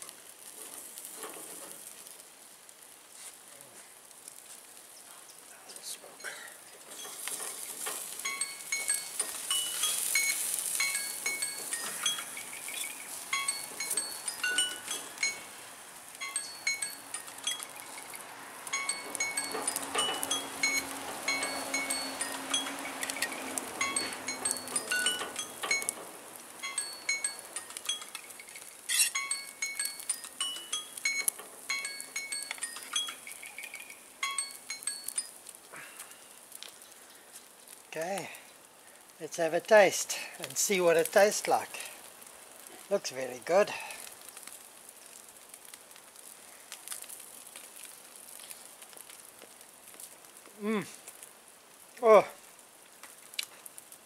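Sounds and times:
metal spatula scraping grill: 0.2 - 2.2, 6.2 - 36.8
bell-like background music: 8.3 - 15.5, 16.2 - 26.0, 26.6 - 35.3.

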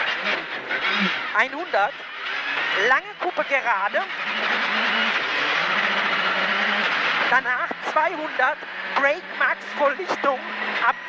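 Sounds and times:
rally car engine at high revs: 0.0 - 11.0.

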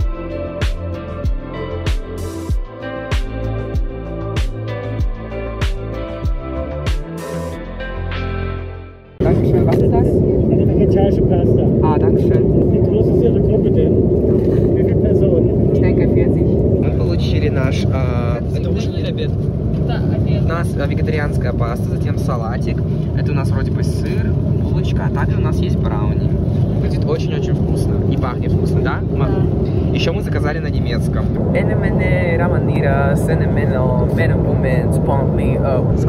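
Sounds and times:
jet engine and air rush: 9.2 - 36.0.

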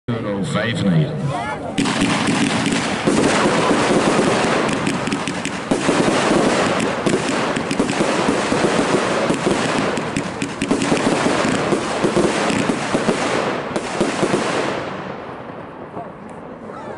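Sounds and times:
firework launches and bursts: 1.8 - 15.2.

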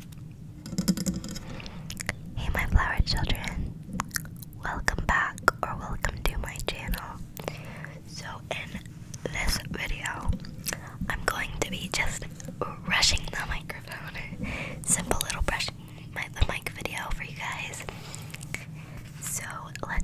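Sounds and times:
woman whispering: 2.0 - 3.7, 4.6 - 7.3, 7.9 - 20.0.

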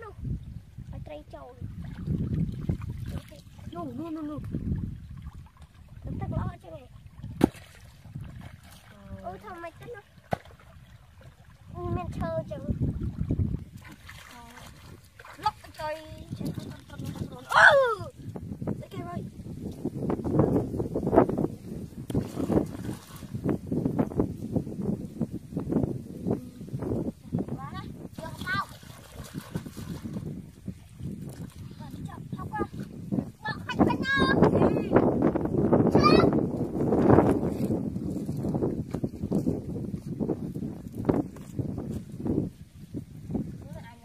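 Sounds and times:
small water splashes: 1.5 - 18.4, 22.0 - 23.6, 27.9 - 33.7
hands squelching in wet mud: 28.2 - 30.4.

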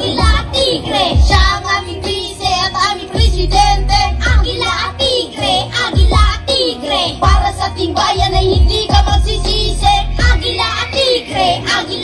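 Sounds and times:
children rapping into microphones: 0.0 - 12.0
hip-hop backing track: 0.0 - 12.0.

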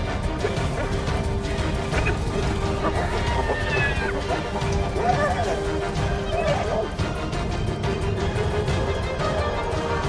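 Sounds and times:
soundtrack music with held note: 0.0 - 10.0
hyenas crying: 0.5 - 7.0.

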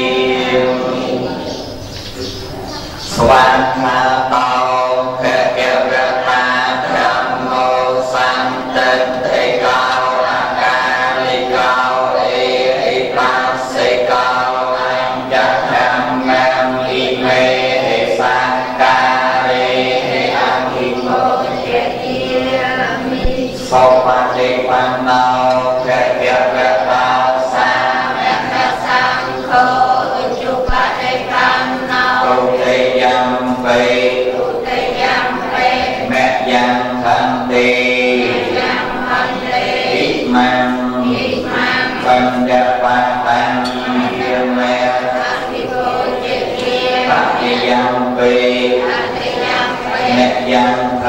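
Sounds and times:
group chanting prayers: 0.0 - 51.0
man chanting into a microphone: 3.1 - 21.1, 23.2 - 27.9, 36.0 - 38.8, 39.9 - 45.2.

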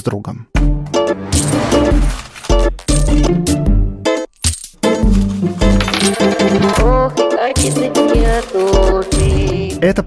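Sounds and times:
metallic clinking hits: 4.4 - 5.0.

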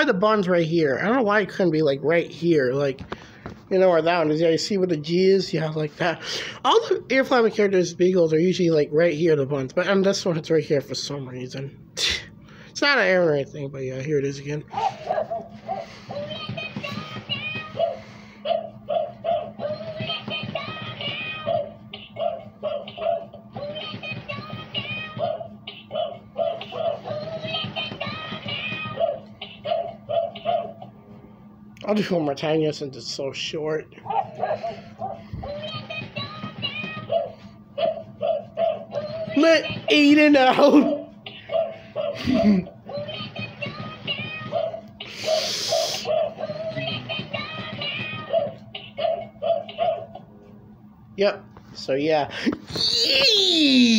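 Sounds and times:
synthesized singing toy song: 16.1 - 18.0, 18.6 - 30.5, 35.4 - 38.0, 38.6 - 40.3, 42.8 - 44.9, 46.0 - 49.8.

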